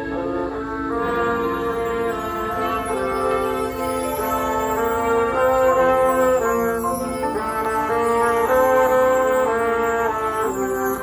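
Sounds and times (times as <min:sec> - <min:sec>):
brass section holding chords: 0:00.0 - 0:11.0.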